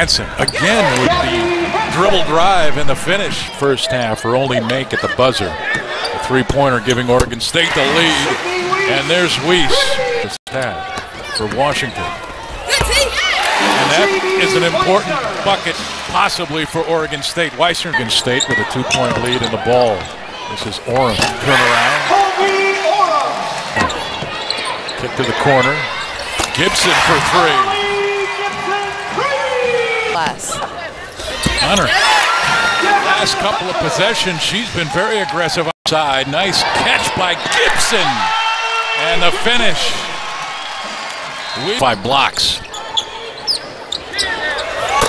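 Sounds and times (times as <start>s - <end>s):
murmur of arena crowd: 0.0s - 45.0s
sneakers squeaking on hardwood: 18.4s - 20.3s, 23.7s - 26.5s, 31.3s - 32.0s, 42.6s - 44.8s.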